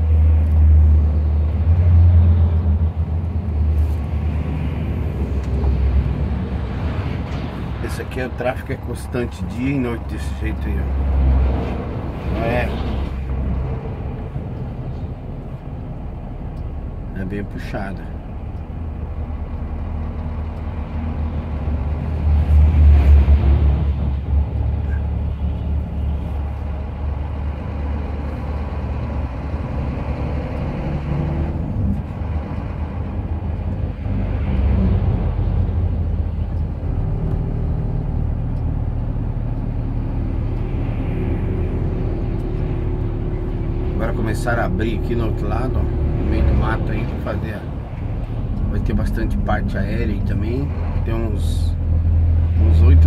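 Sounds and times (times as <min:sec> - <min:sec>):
truck diesel engine drone: 0:00.0 - 0:53.0.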